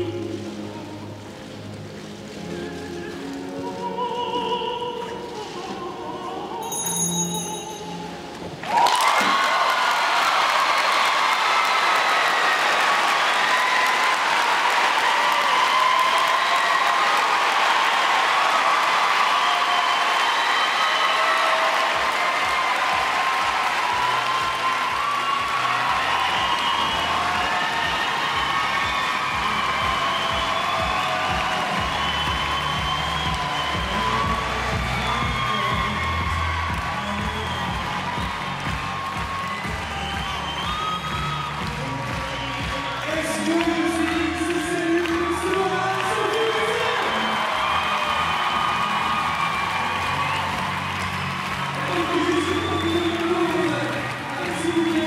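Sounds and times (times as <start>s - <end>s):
crowd cheering and applauding: 0.0s - 55.0s.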